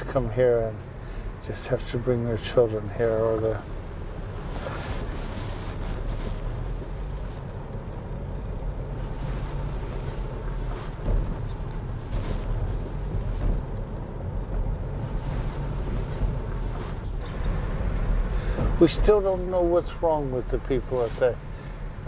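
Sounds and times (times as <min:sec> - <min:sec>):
car cabin road and wind noise: 0:00.0 - 0:22.0.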